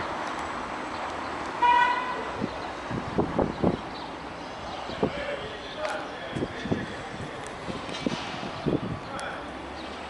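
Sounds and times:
locomotive horn blast: 1.6s - 2.2s.

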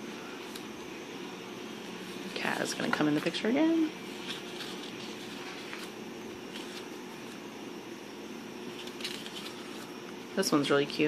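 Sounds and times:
low room hum: 0.0s - 11.0s
paper sheets rustling: 4.0s - 7.4s, 8.7s - 10.0s.

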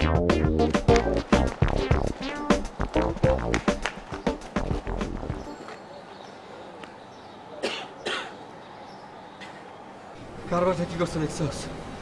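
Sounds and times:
man coughing: 7.6s - 8.4s.

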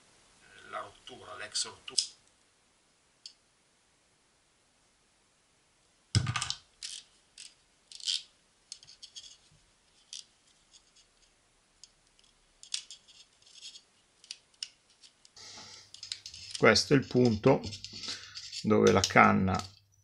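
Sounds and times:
small items clicking and scraping: 6.2s - 19.8s.

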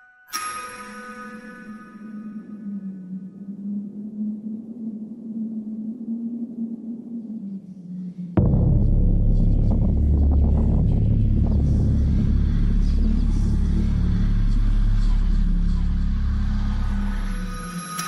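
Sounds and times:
loud deep rumble: 8.4s - 17.7s.

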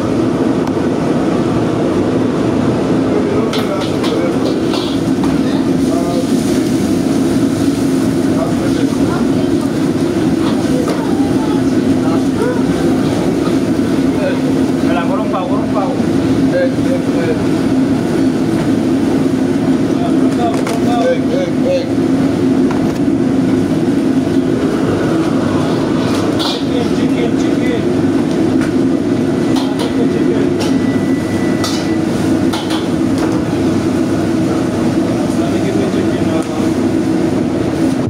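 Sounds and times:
extraction fan noise: 0.0s - 38.0s
gas burner flame roaring: 0.0s - 38.0s.

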